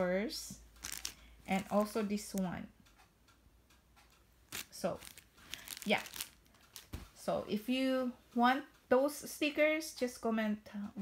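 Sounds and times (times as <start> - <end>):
plastic sleeves crinkling: 0.7 - 2.4, 4.5 - 7.2.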